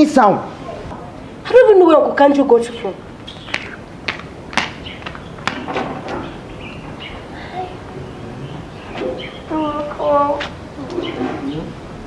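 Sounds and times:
faint bird chirps: 2.7 - 3.9.

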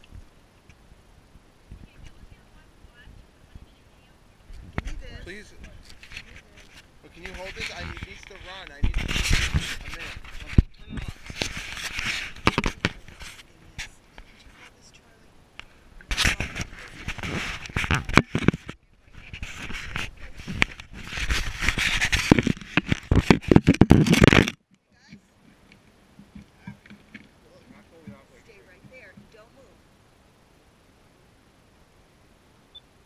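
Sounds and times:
action camera handling noise: 16.1 - 24.6.

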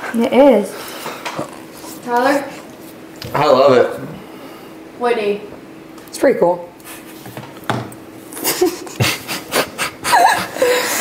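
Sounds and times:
person laughing in breathy puffs: 8.3 - 11.0.

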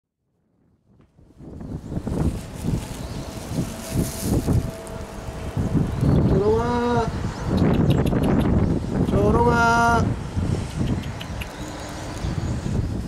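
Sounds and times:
wind rumbling on microphone: 0.2 - 13.0.

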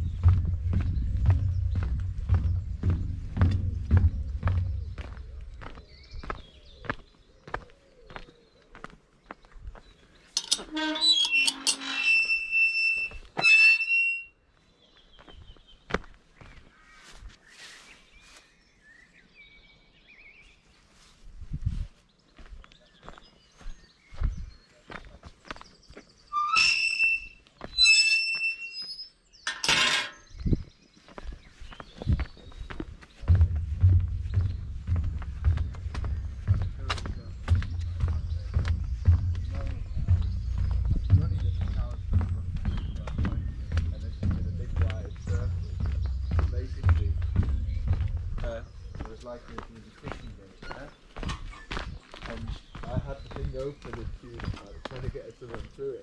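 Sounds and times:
footsteps on outdoor path: 0.0 - 11.1, 14.6 - 56.0
footsteps on wooden footbridge: 0.0 - 11.2, 14.9 - 17.5, 21.4 - 28.9, 30.2 - 56.0.

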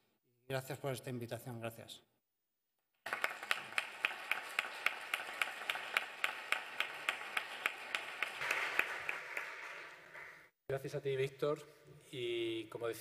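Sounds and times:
audience applauding: 3.0 - 10.5
close hands clapping sharply: 3.0 - 10.5.

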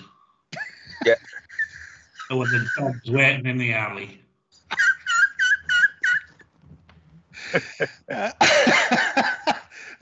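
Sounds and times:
high-pitched squealing laughter: 0.7 - 3.0, 4.6 - 6.5.

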